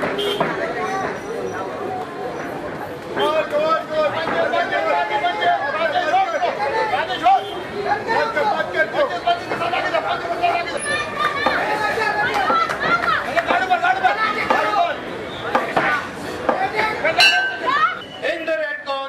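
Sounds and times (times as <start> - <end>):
people talking and calling out: 0.0 - 19.0.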